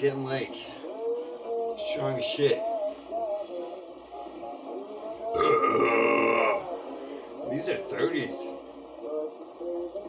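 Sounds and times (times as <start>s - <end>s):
faint background music: 0.0s - 10.0s
man burping: 5.4s - 6.6s.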